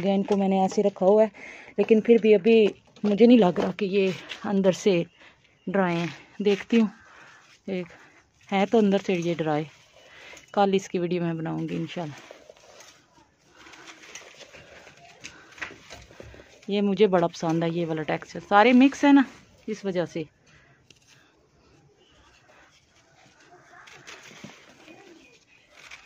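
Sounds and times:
small crisp crackles: 0.0s - 26.0s
pigeon cooing: 23.2s - 25.5s.

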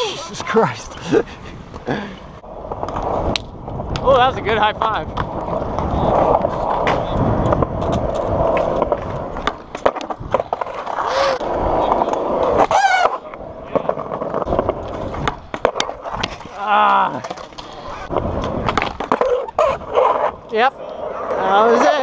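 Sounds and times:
skateboard wheels rolling on concrete: 0.0s - 22.0s
skateboard clacks and knocks: 13.7s - 20.2s.

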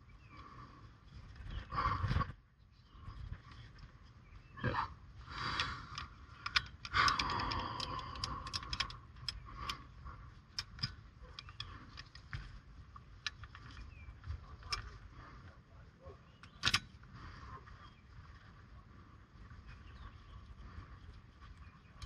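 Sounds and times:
metallic clicks and clinks: 5.6s - 9.8s, 10.5s - 12.3s, 16.4s - 16.9s.

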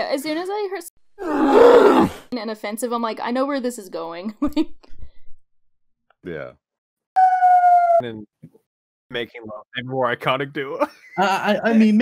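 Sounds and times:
man speaking: 6.3s - 6.5s, 8.0s - 8.5s, 9.1s - 12.0s.

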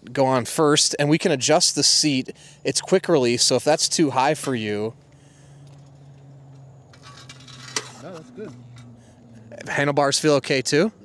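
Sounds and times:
metal frame clicks and rattles: 6.9s - 9.0s.

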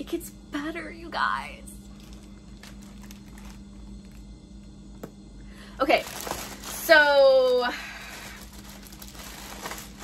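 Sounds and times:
steady low hum: 0.0s - 10.0s
plastic bags crinkling: 1.8s - 4.2s, 5.8s - 10.0s.

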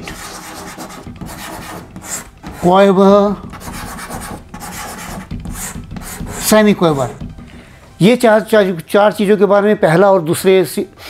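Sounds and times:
chalk scratching on a blackboard: 0.0s - 7.2s.

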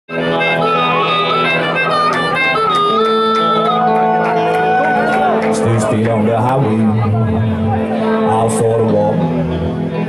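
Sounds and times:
harmonica melody: 0.1s - 5.6s
electric guitars: 0.1s - 10.0s.

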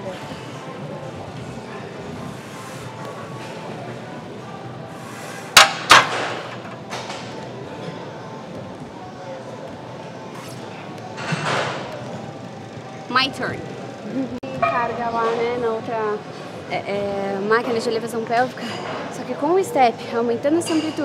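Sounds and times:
gym background music: 0.0s - 21.0s.

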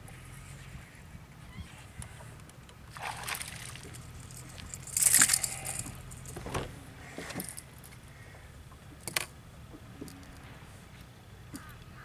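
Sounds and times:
fishing tackle rattling: 3.2s - 6.4s.

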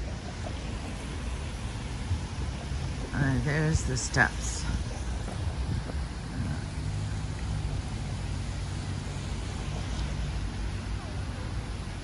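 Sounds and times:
rain falling on river: 0.0s - 12.0s
road traffic hum: 0.0s - 12.0s.

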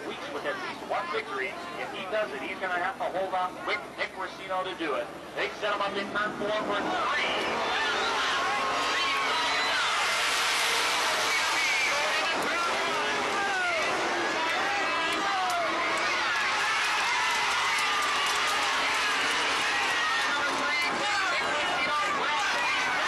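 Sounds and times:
crowd noise: 0.0s - 23.0s
race car engines passing: 3.8s - 23.0s
people shouting: 7.2s - 23.0s.

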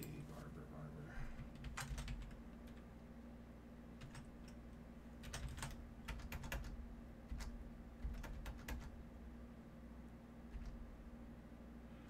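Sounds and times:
faint steady hum: 0.0s - 12.0s
typing on computer keyboard: 1.4s - 2.8s, 4.0s - 4.6s, 5.2s - 9.0s.

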